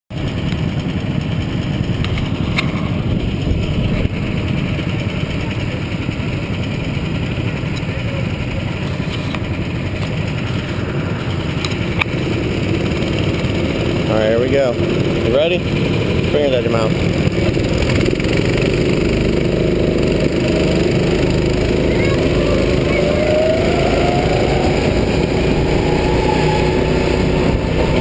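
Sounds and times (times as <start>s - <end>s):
go-kart engines idling: 0.1s - 28.0s.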